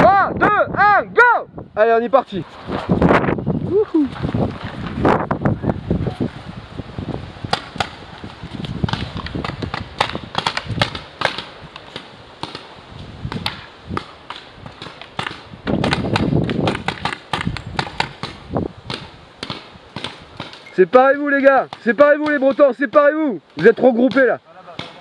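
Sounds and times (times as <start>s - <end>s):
rustling noise: 2.2s - 20.8s.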